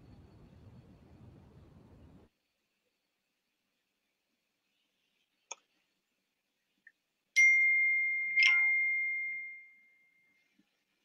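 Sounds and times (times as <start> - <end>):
chime dings: 7.4 - 10.2.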